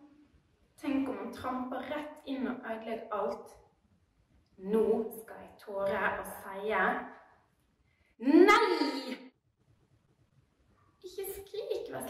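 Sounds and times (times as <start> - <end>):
woman shouting: 8.3 - 9.2.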